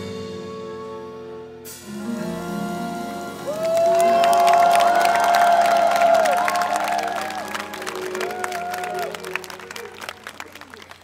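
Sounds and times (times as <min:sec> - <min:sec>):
jazz trio playing: 0:00.0 - 0:04.1
crowd cheering and whooping: 0:03.4 - 0:11.0.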